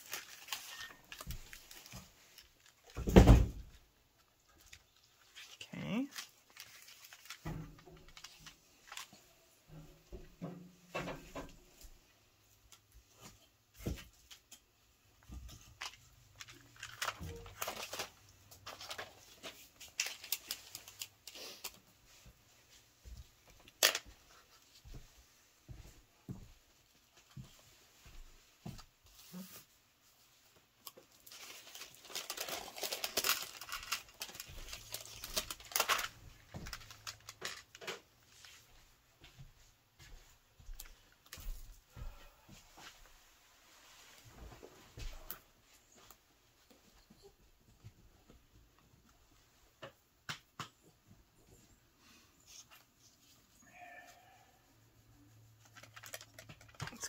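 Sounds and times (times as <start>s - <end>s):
paper rustling: 0.0s - 3.1s, 4.5s - 9.3s, 15.7s - 22.3s, 30.9s - 38.7s, 55.6s - 57.0s.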